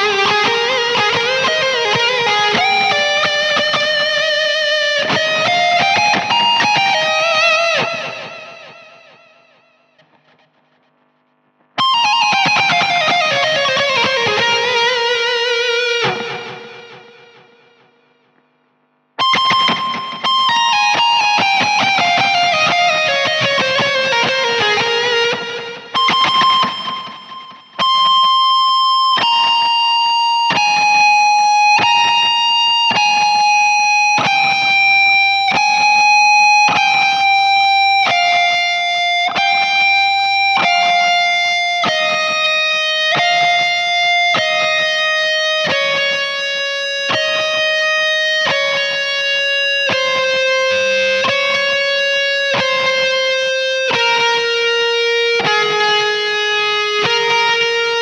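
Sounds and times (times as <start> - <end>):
electric guitar solo sustained notes: 0.0 - 10.7, 11.8 - 17.9, 19.2 - 58.0.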